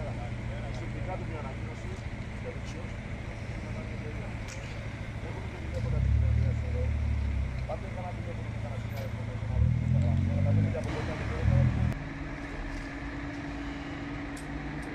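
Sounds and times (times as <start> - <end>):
people talking: 0.0 - 12.9
car engine idling: 0.0 - 14.9.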